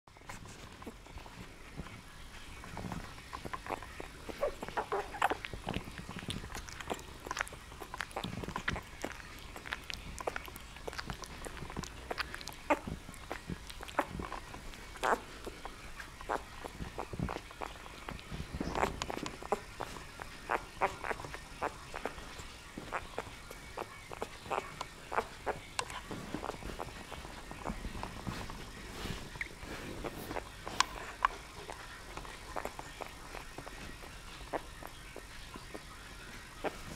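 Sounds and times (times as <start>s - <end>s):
paws scratching on towel: 0.1s - 36.9s
small scuffling: 0.1s - 36.9s
puppy squeaks and whimpers: 2.8s - 28.6s.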